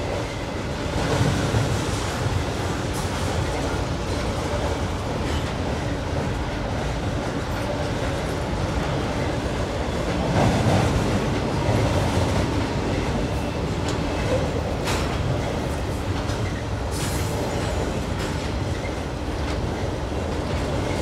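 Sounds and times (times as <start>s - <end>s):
train wheels rumbling on rails: 0.0s - 21.0s.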